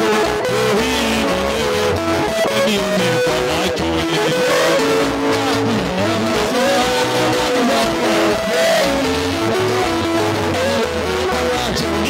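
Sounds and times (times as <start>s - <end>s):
sliding melody line: 0.0s - 12.0s
steady bass notes: 0.0s - 12.0s.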